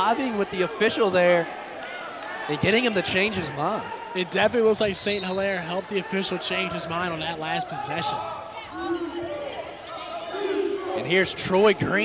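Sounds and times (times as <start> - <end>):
voices in an arena: 0.0 - 12.0.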